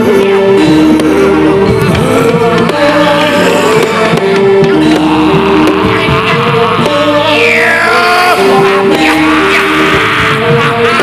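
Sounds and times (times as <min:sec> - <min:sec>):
held melody line: 0:00.0 - 0:11.0
drum strokes: 0:00.6 - 0:11.0.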